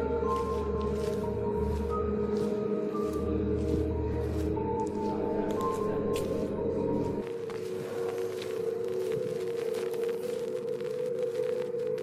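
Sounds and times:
low eerie drone: 0.0 - 11.6.

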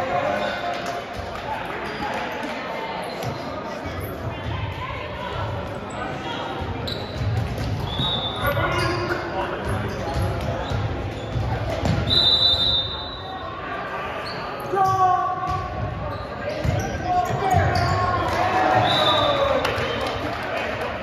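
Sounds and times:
sneakers squeaking on court: 5.9 - 12.1, 15.5 - 18.9.

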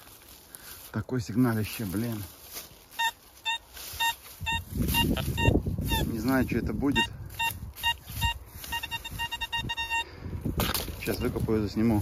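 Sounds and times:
metal detector beeping: 2.9 - 10.4.

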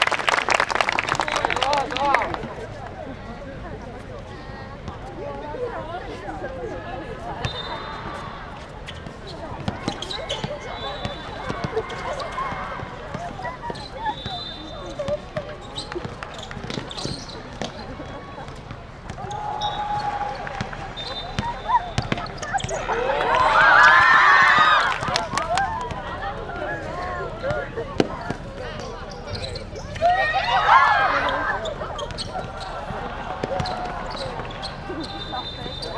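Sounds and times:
players shouting: 19.1 - 28.4, 29.8 - 35.9
basketball bouncing on hard court: 33.4 - 34.5.

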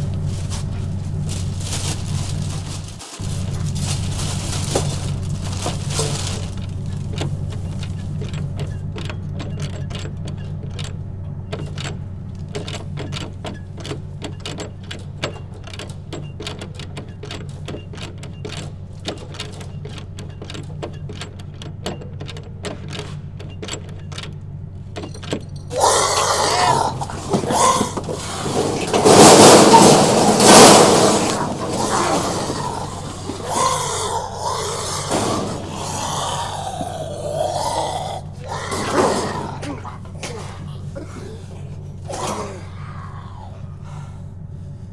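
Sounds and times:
steady low drone: 0.0 - 14.2, 30.4 - 44.9
harsh struggle with vocal cries: 25.7 - 44.5.

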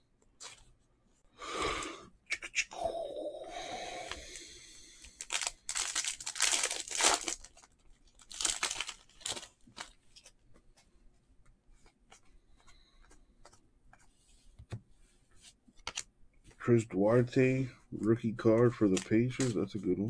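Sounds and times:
foil wrapper tearing and crinkling: 5.2 - 10.0
cards flipped by hand: 15.7 - 16.6, 18.6 - 19.7.

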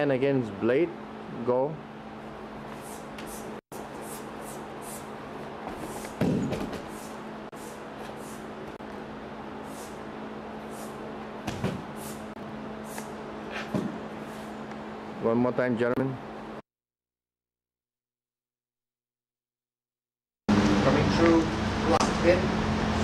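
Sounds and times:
room hum: 0.0 - 16.6
light thuds on mat: 5.7 - 6.9, 11.4 - 11.9
body thumping on padded mat: 5.7 - 7.0, 11.4 - 12.0, 13.6 - 14.0.

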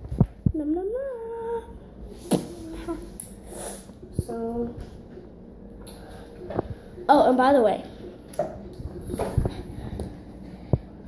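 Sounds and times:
girl humming: 0.4 - 3.2.

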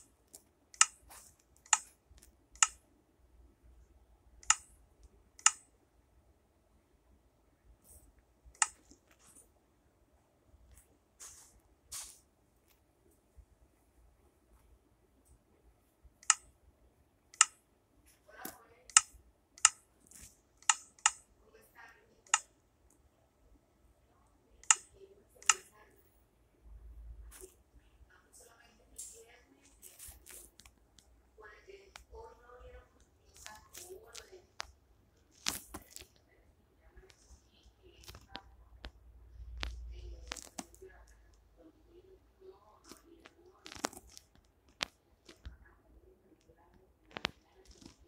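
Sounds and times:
sharp clicks: 0.3 - 2.8, 4.4 - 5.7, 16.2 - 16.5, 17.3 - 17.6, 18.9 - 19.8, 20.6 - 21.2, 22.2 - 23.0, 24.6 - 25.7.

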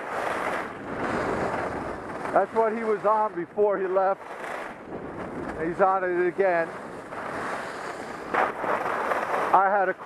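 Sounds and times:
skis sliding over snow: 0.0 - 10.0
wind buffeting microphone: 0.0 - 10.0.

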